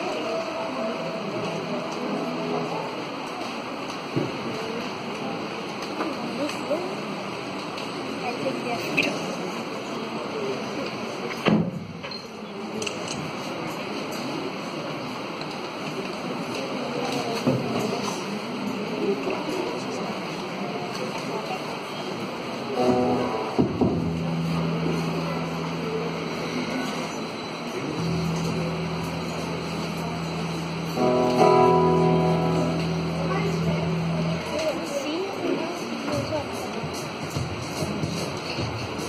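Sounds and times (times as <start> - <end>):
room murmur: 0.0 - 8.0, 15.2 - 39.0
instrument playing held chords: 0.4 - 3.3, 22.8 - 35.3.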